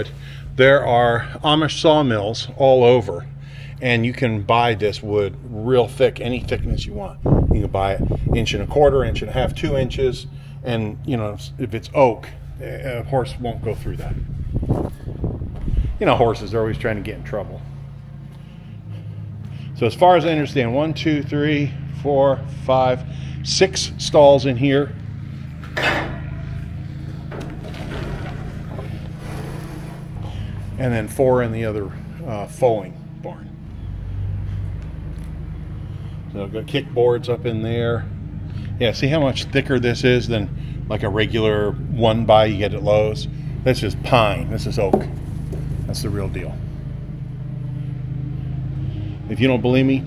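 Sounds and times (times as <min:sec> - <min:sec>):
low machine hum: 0:00.0 - 0:50.0.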